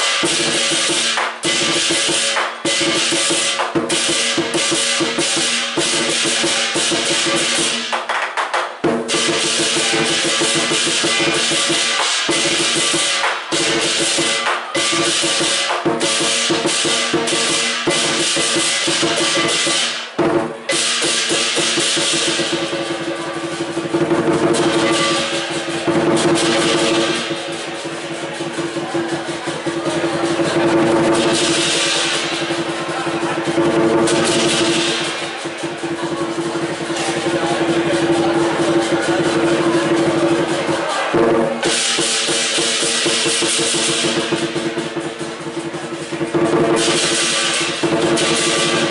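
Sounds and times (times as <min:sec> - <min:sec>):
large drum beating: 0:00.0 - 0:08.0, 0:08.8 - 0:48.9
hand cymbals clashing: 0:00.0 - 0:08.1, 0:08.8 - 0:48.9.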